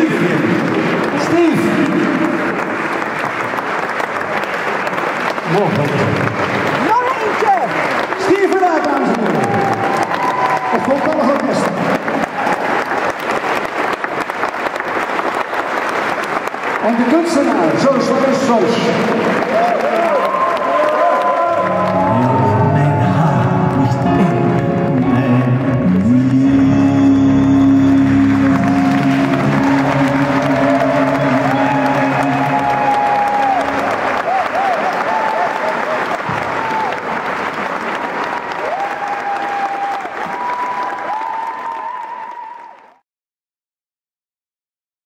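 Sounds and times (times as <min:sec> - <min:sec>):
audience applause: 0:00.0 - 0:43.0
wavering singing voice: 0:21.7 - 0:33.7.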